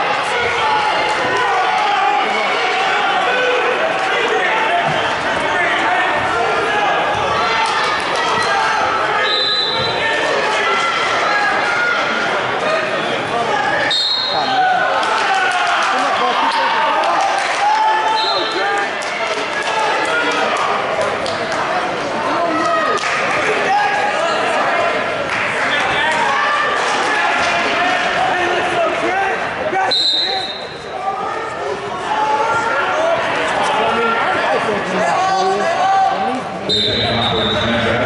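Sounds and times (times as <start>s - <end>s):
crowd talking echoing: 0.0s - 38.0s.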